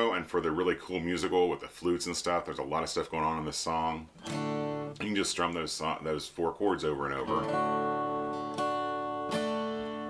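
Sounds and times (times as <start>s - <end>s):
acoustic guitar strummed slowly: 4.2s - 5.0s, 7.3s - 10.0s.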